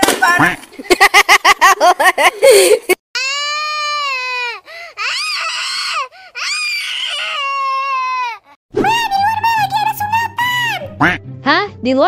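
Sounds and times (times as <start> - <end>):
baby crying: 3.2 - 8.6.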